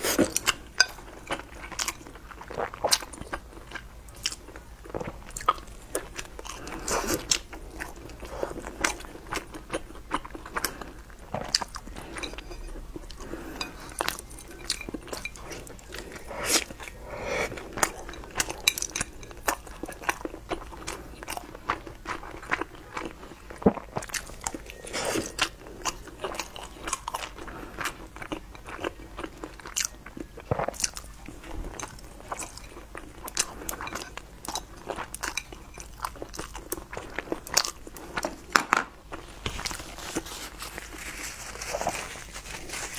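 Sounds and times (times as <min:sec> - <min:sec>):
crunchy food chewing: 0:00.0 - 0:42.9.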